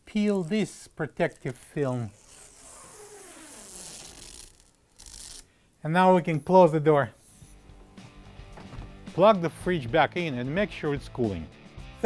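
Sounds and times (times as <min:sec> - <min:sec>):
plastic film being peeled off: 0:00.1 - 0:05.5.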